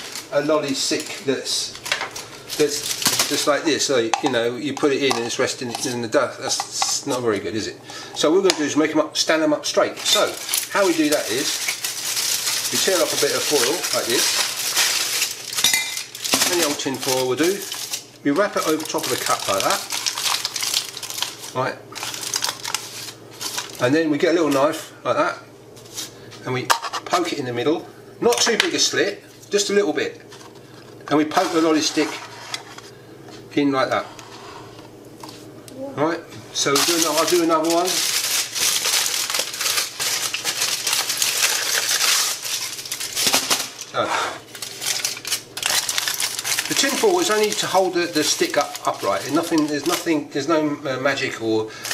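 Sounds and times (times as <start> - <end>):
aluminium foil crinkling: 0.0 - 7.1, 7.9 - 24.7, 36.6 - 50.2.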